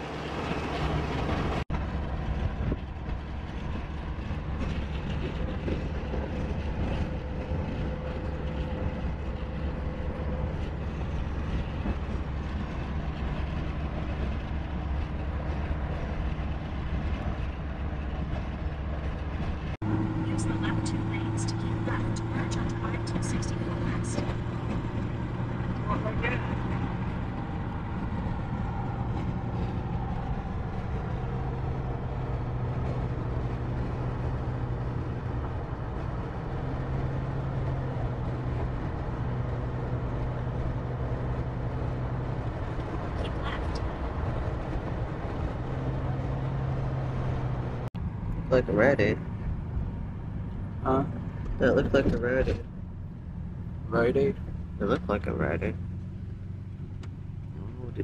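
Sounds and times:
engine and tyres droning: 0.0s - 58.0s.

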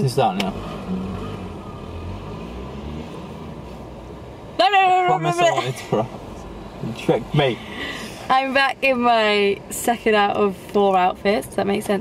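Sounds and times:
car engine hum from inside: 0.0s - 12.0s.

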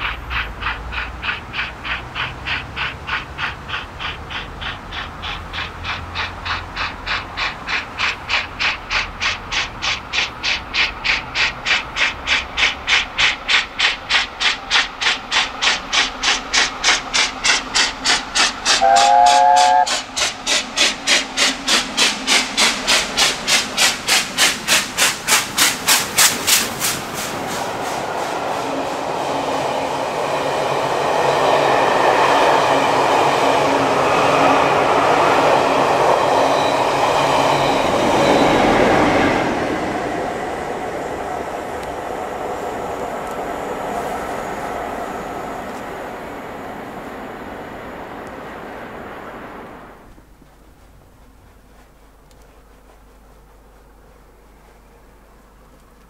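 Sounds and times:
rumble of coaches rolling past: 0.0s - 56.0s
steam locomotive exhaust beating: 0.0s - 56.0s.

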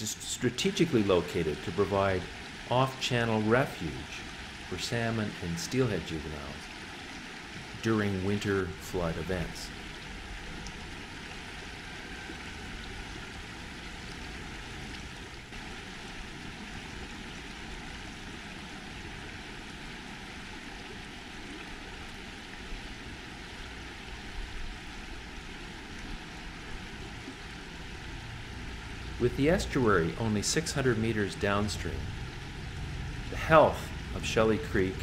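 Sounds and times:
river water rushing over cobbles: 0.0s - 35.0s.

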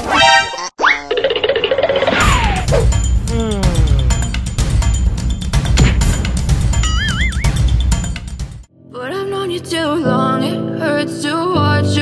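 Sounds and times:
music beat with percussion: 2.4s - 8.7s.

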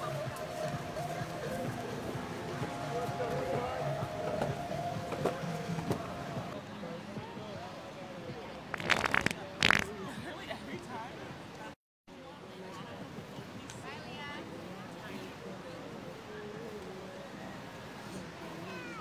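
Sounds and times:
people chattering: 0.0s - 19.0s.

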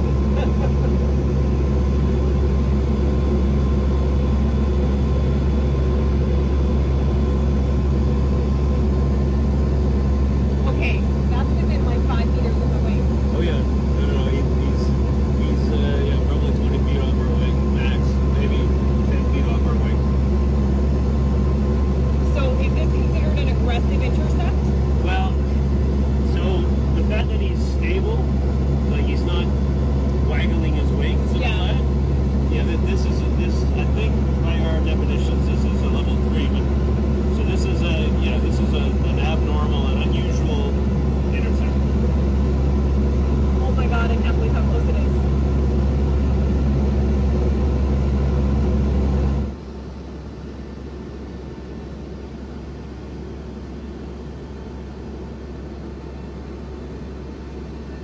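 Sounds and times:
cabin hum: 0.0s - 58.0s
plane engine drone in cabin: 0.0s - 58.0s.

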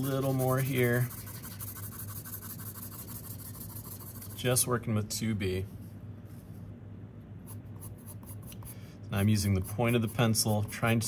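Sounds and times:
pencil scratching on paper: 0.0s - 4.5s, 7.5s - 8.7s, 9.4s - 11.0s.

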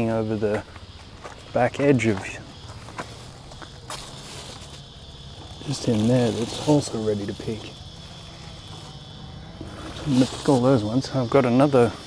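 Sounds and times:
high-pitched insect hum: 0.0s - 12.0s.

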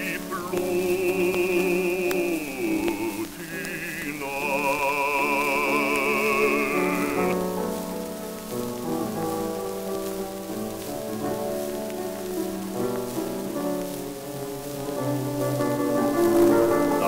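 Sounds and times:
operatic baritone singing: 0.0s - 7.4s
piano chords: 0.0s - 17.0s
record surface crackle: 0.0s - 17.0s.

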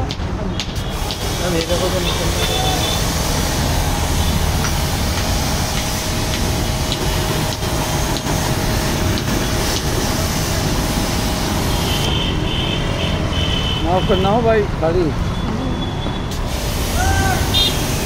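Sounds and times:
water jet hissing: 0.7s - 14.1s, 16.3s - 18.0s
pressure washer running: 0.8s - 14.5s, 16.3s - 18.0s.

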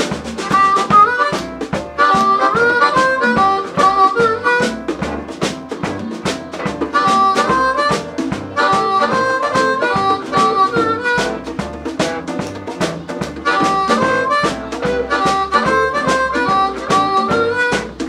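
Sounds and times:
amplified blues harmonica: 0.0s - 18.0s
live band playing: 0.0s - 18.0s.

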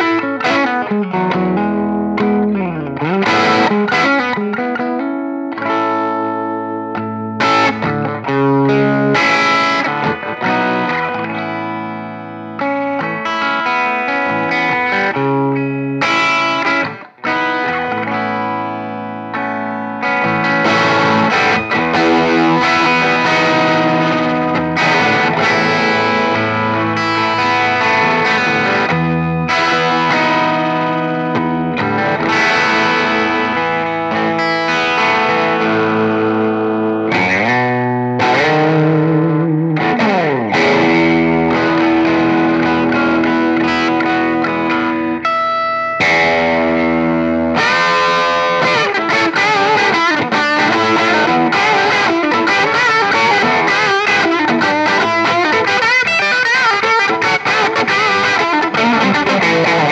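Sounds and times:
overdriven electric guitar lead: 0.0s - 59.9s.

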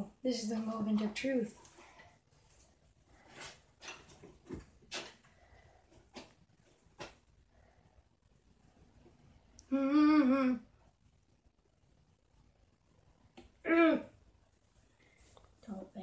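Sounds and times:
person humming: 9.6s - 10.7s.

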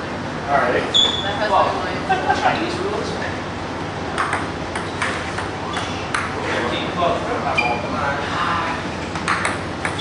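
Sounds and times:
ping-pong ball hits: 4.1s - 6.4s, 9.2s - 10.0s.

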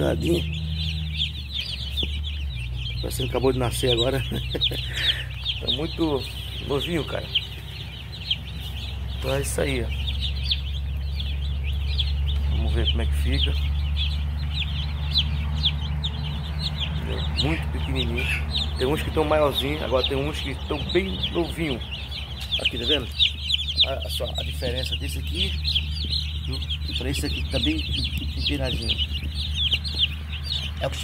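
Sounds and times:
chicks peeping: 0.0s - 31.0s
steady low hum: 0.0s - 31.0s.

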